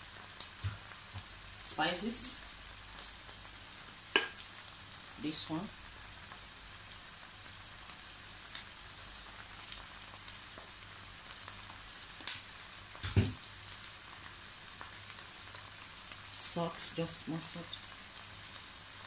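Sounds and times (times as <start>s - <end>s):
food frying in pan: 0.0s - 19.0s.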